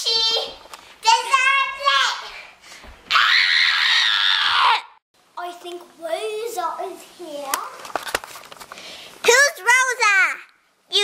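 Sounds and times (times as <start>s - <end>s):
girl screaming: 3.1s - 5.0s.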